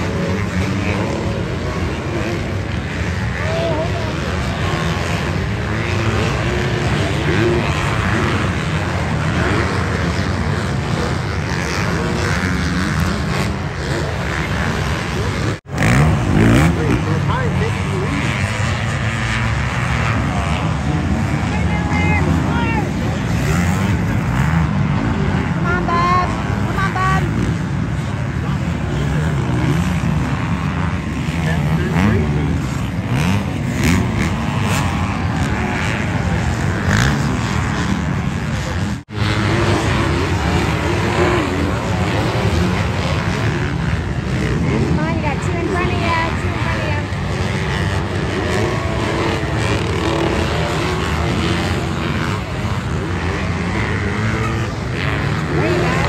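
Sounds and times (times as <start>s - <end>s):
dirt bike engines revving: 0.0s - 56.0s
voices: 0.0s - 56.0s.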